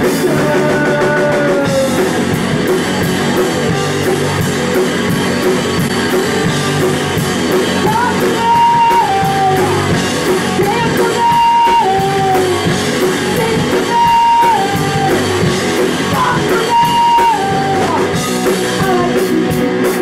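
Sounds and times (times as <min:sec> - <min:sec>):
punk band playing live: 0:00.0 - 0:20.0
woman singing: 0:07.8 - 0:19.6.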